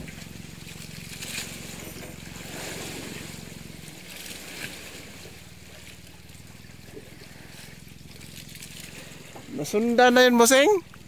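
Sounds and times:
sea water hissing: 0.0s - 9.6s
boat engine running: 0.0s - 11.0s.

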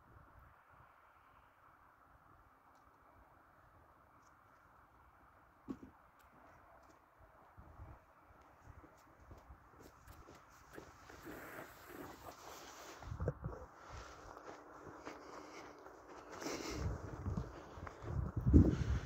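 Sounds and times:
footsteps in snow: 8.4s - 19.0s.

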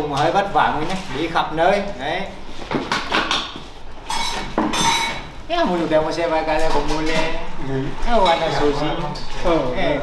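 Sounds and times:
metal kitchenware clattering: 3.1s - 5.4s.

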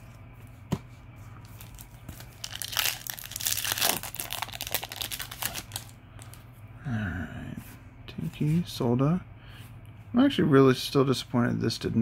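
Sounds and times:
foil wrapper crinkling and tearing: 1.5s - 6.3s.

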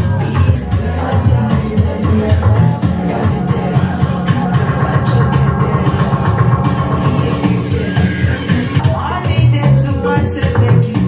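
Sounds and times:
loud music with heavy bass: 0.0s - 11.0s.

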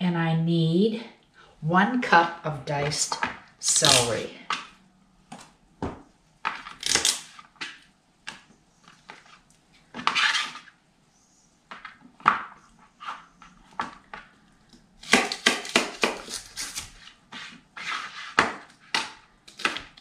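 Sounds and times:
knife chopping on plastic board: 15.0s - 16.5s, 18.3s - 20.0s
knife slicing scrape: 16.2s - 18.4s.

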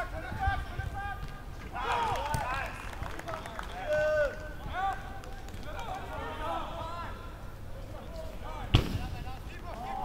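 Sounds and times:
distant players shouting: 0.1s - 2.8s.

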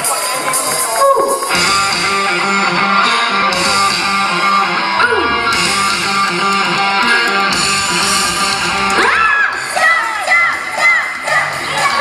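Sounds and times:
live rock band playing: 0.0s - 9.7s
electric guitar strumming: 1.5s - 9.7s.

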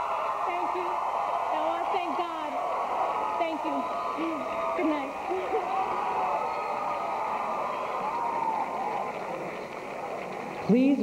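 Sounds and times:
audience applauding: 0.0s - 11.0s
audience cheering and calling: 0.0s - 11.0s.

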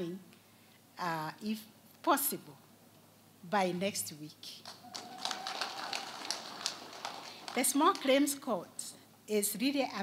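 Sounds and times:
audience clapping: 4.6s - 8.4s.

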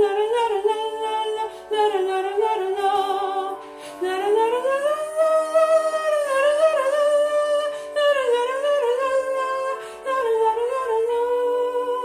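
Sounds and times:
woman singing soprano: 0.0s - 12.0s.

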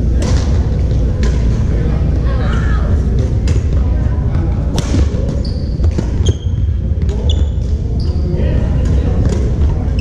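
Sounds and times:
distant voices in echoing hall: 0.0s - 10.0s
sneakers squeaking on gym floor: 5.2s - 8.4s.

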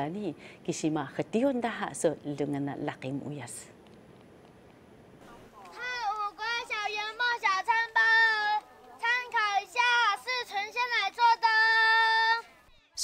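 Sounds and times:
child singing: 5.7s - 12.5s.

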